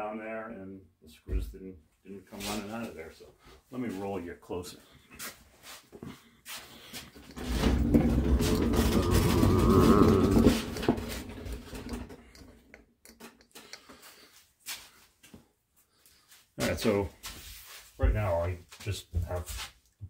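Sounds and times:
casters rumbling across floor: 0:07.4 - 0:12.2.

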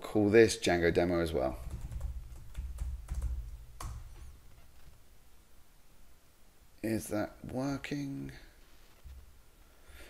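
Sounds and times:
faint low hum: 0:00.0 - 0:10.0
computer keyboard typing: 0:01.6 - 0:04.4.

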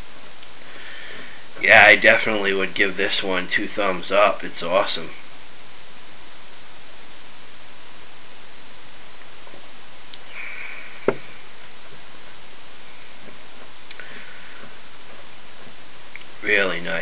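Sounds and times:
steady hiss: 0:00.0 - 0:17.0
man drinking beer: 0:13.3 - 0:15.2.

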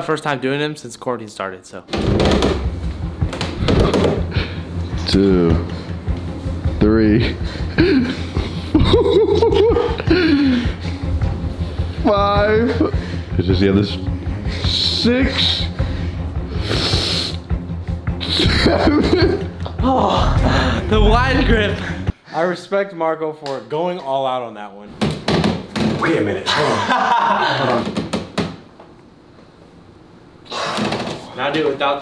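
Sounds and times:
pull-up bar knocking in door frame: 0:02.0 - 0:04.3
background music with bass: 0:02.0 - 0:22.2
man hissing exhale through teeth: 0:16.1 - 0:17.5
steady low rumble: 0:20.1 - 0:22.1.

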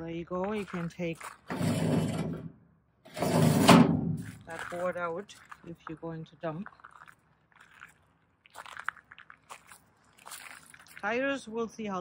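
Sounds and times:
footsteps on gravel: 0:00.4 - 0:01.9, 0:04.1 - 0:11.6.

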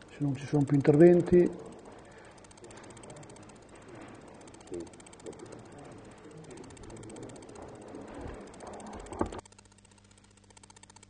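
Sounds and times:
faint electrical hum: 0:00.0 - 0:11.0
indistinct murmuring: 0:00.1 - 0:09.4.

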